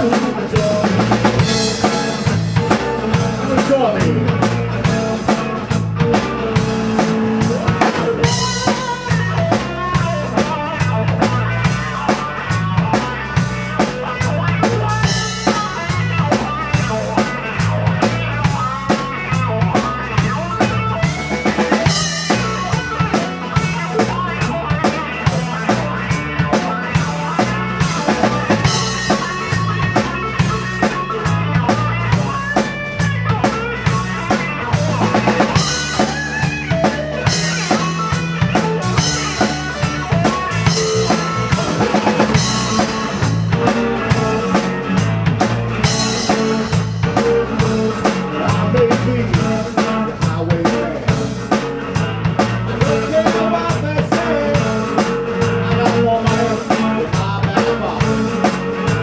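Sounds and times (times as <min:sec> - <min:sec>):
drum kit steady beat: 0:00.0 - 0:59.0
electric bass: 0:00.0 - 0:59.0
electric guitar lead lines: 0:00.0 - 0:59.0.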